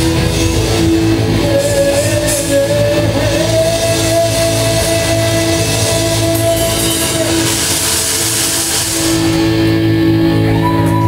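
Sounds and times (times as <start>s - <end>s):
cymbal wash: 0.0s - 11.0s
distorted electric guitars: 0.0s - 11.0s
punk rock band playing: 0.0s - 11.0s.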